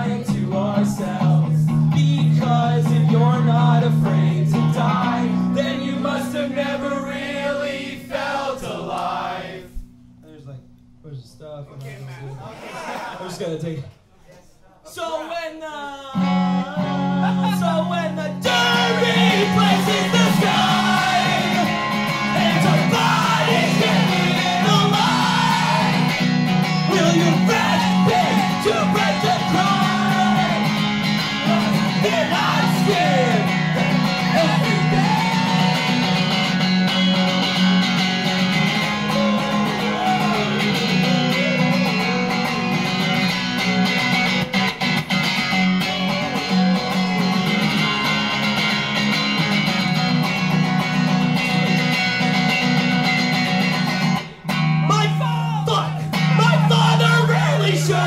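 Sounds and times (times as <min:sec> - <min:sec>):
electric guitar strummed chords: 0:16.2 - 0:55.2, 0:55.9 - 0:58.0.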